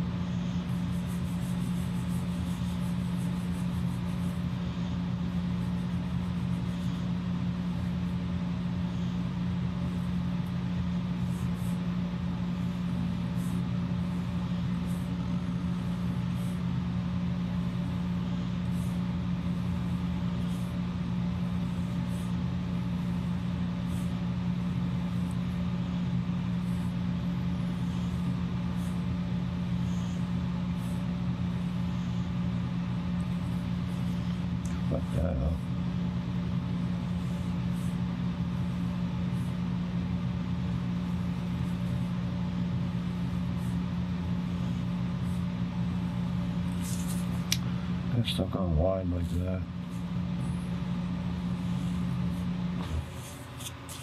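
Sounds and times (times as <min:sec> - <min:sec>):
steady low hum: 0:00.0 - 0:54.0
pen scratching on paper: 0:00.1 - 0:47.5, 0:49.2 - 0:54.0.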